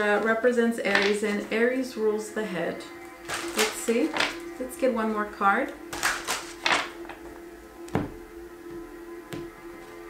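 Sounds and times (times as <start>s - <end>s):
background music: 0.0s - 10.0s
cards being shuffled: 5.9s - 7.0s.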